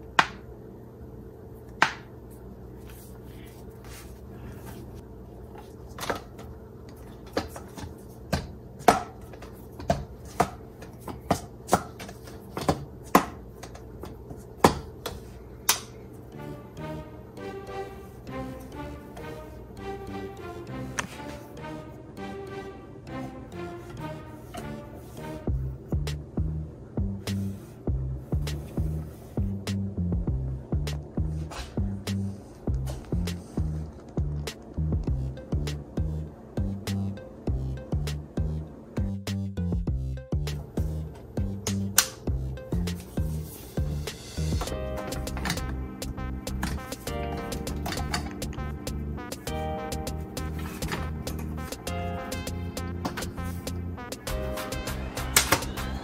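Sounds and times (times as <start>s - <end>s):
soft music: 15.2s - 56.0s
bass line: 25.5s - 56.0s.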